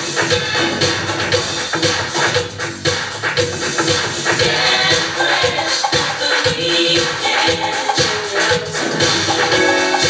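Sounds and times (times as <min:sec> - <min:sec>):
dance music with steady beat: 0:00.0 - 0:10.0.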